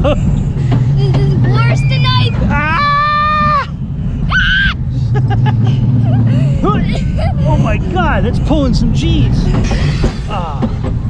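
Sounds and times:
riders laughing and yelping: 0.0 - 10.6
roller coaster rumbling on track: 0.0 - 11.0
wind noise: 5.8 - 11.0.

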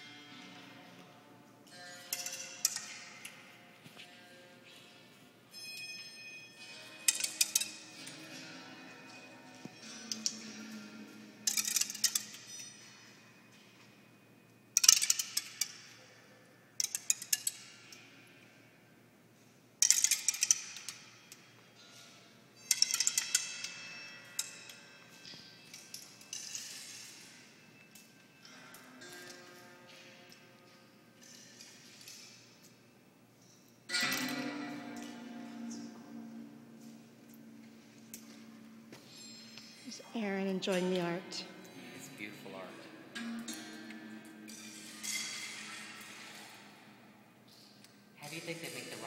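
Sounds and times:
pebbles clattering on bamboo tubes: 7.1 - 8.4, 9.6 - 12.8, 14.8 - 15.9, 16.8 - 18.0, 19.8 - 21.9, 22.7 - 27.4.

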